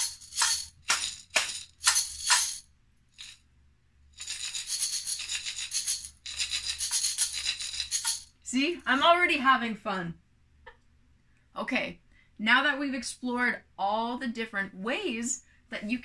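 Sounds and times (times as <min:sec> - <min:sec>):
glass jars of dry food rattling: 0:00.0 - 0:02.6, 0:04.2 - 0:09.0.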